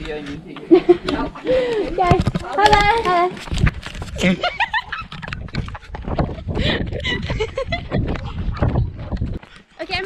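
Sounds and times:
running footsteps: 0.0s - 10.0s
wind rumbling on microphone: 1.5s - 10.0s.

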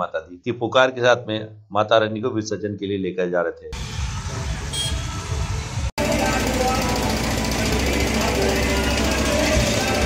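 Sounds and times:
fast drumming: 6.0s - 10.0s.

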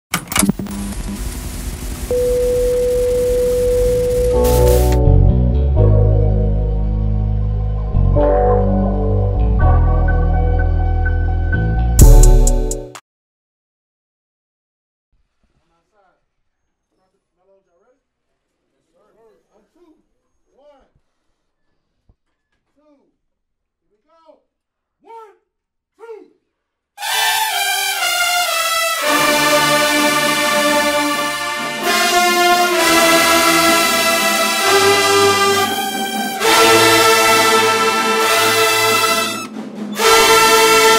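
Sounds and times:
static hiss with low hum: 0.3s - 5.0s
steady test tone: 0.4s - 5.0s
television crackle: 0.4s - 5.0s
brass marching band playing: 2.1s - 5.1s, 27.0s - 40.9s.

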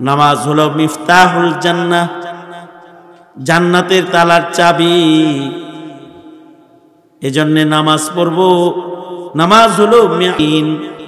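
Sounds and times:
man chanting a sermon: 0.0s - 6.6s, 7.2s - 11.0s.

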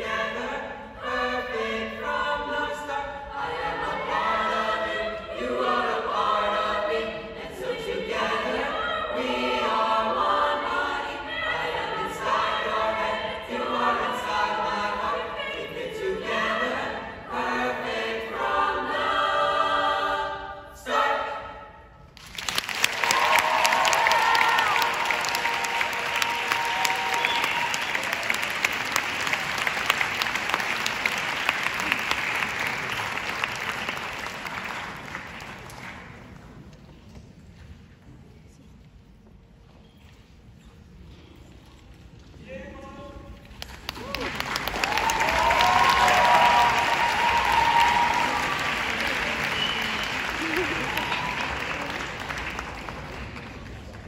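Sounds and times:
choir singing in parts: 0.0s - 21.9s, 44.8s - 49.6s
audience applause: 22.2s - 36.2s, 43.6s - 54.0s.

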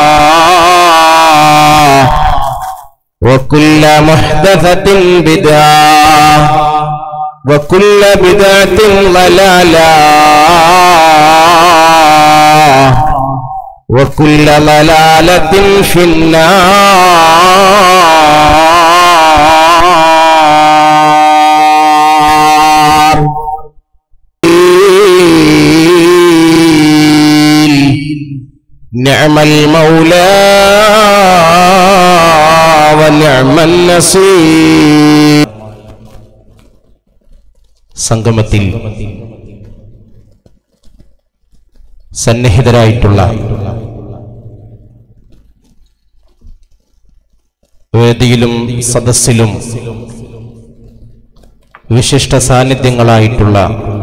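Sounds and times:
man chanting through loudspeakers: 0.0s - 23.6s, 24.4s - 36.4s, 38.0s - 40.1s, 42.1s - 45.0s, 47.9s - 51.1s, 51.8s - 54.0s.

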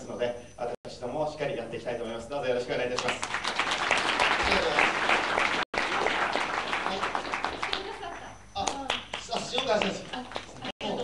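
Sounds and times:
audience applause: 3.0s - 8.0s.

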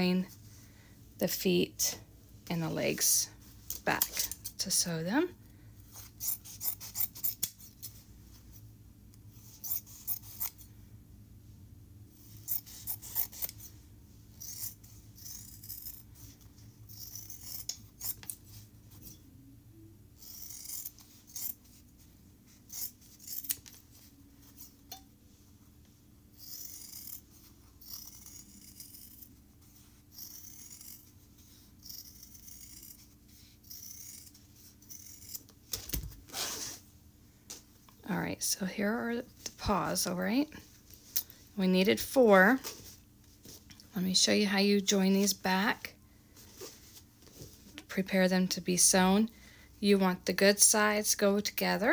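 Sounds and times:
scissors snipping fabric: 6.2s - 7.6s, 12.4s - 13.6s, 14.4s - 16.0s, 16.9s - 18.4s, 20.2s - 21.6s, 22.7s - 23.8s, 26.4s - 27.2s, 27.8s - 29.3s, 30.1s - 31.1s, 31.8s - 35.5s.

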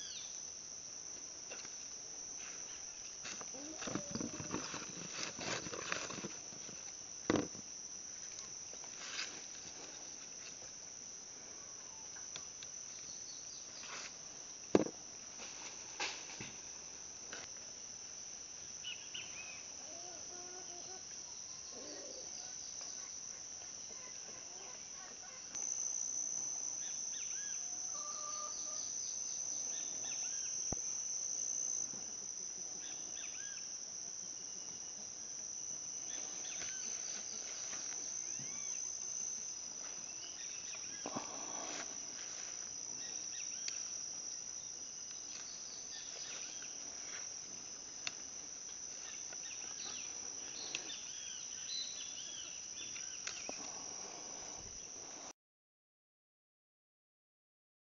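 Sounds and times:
insects chirring: 0.0s - 55.3s.

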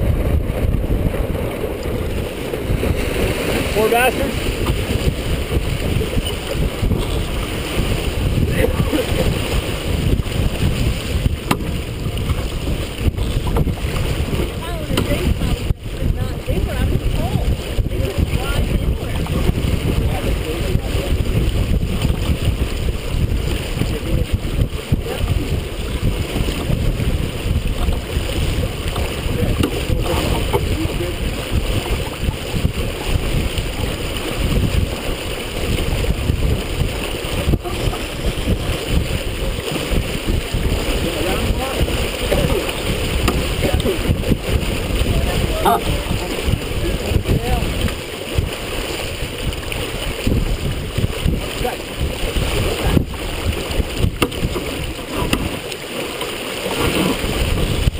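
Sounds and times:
water rushing along hull: 0.0s - 57.9s
wind buffeting microphone: 0.0s - 57.9s.

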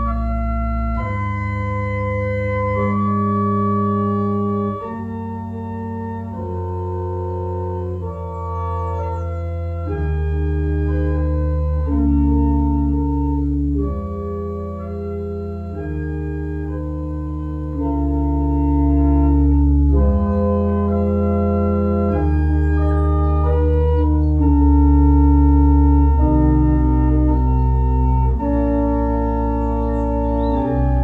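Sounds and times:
church organ chords: 0.0s - 31.0s.

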